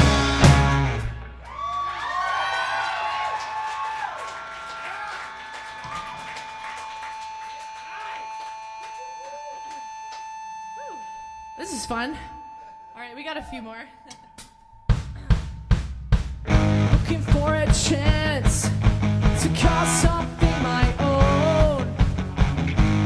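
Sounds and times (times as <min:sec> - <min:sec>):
punk rock band playing: 0:00.0 - 0:01.4, 0:14.9 - 0:23.0
voices whooping and calling out: 0:01.4 - 0:10.0
steady high tone: 0:04.3 - 0:16.1.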